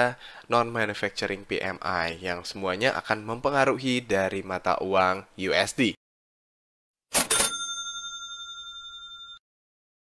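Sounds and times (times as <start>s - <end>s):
high bell-like ring: 7.2s - 9.4s.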